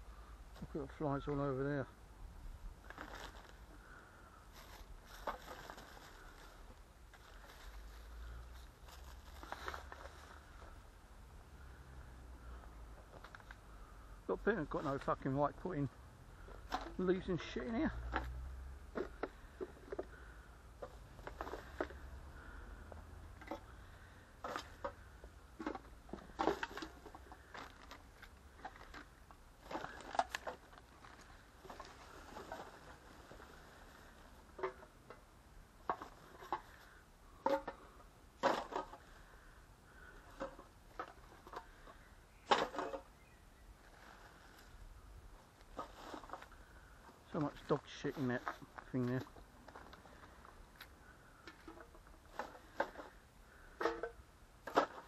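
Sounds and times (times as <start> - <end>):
litter and dry leaves crackling: 2.8 - 10.8, 26.3 - 34.5, 43.2 - 51.5.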